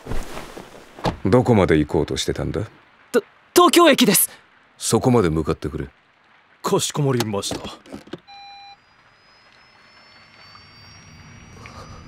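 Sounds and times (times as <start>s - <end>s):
thin high whine: 8.3s - 12.0s.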